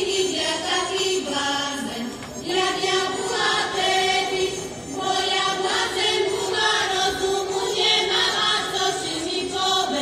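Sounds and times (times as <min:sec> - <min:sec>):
women singing folk song: 0:00.0 - 0:10.0.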